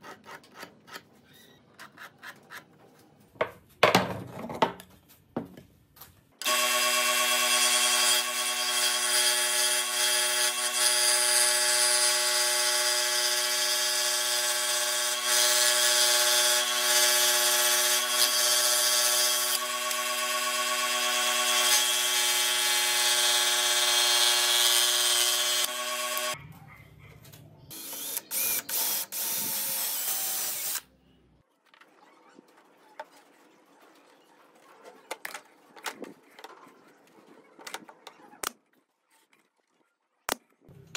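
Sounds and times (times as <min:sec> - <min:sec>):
scroll saw running: 0:06.4 - 0:26.4, 0:27.7 - 0:30.8.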